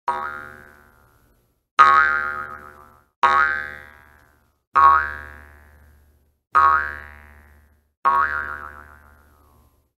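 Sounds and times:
cartoon boing sound effect: 0.1s - 0.7s, 1.8s - 3.9s, 4.8s - 5.4s, 6.6s - 7.2s, 8.1s - 9.2s.

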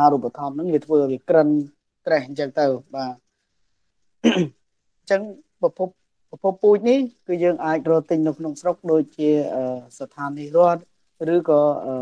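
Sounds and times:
person speaking: 0.0s - 3.3s, 5.1s - 12.0s
person clearing throat: 4.2s - 4.6s.

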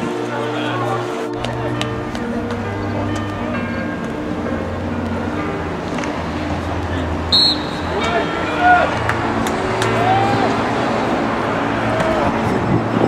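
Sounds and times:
steady music notes: 0.0s - 13.0s
voices shouting outdoors: 0.0s - 13.0s.

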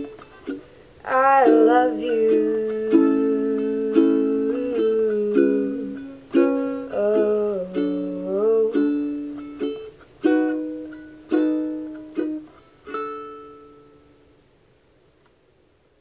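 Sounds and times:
ukulele strummed chords: 0.0s - 14.4s.

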